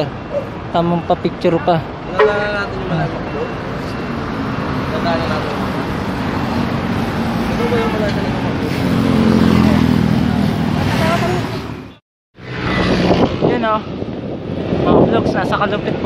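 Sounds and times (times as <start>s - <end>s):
motorcycles and cars passing: 0.0s - 16.0s
people talking: 7.6s - 8.5s.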